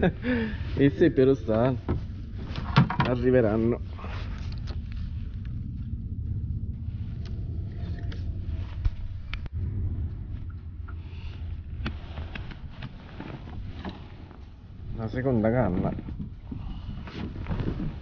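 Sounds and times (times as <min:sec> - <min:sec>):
low rumble: 0:00.0 - 0:18.0.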